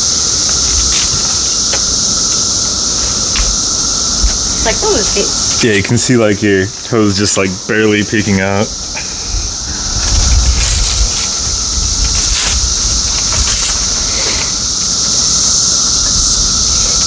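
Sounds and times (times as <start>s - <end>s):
steady hiss: 0.0s - 17.0s
velcro strap rasps: 0.5s - 2.4s, 10.0s - 14.6s.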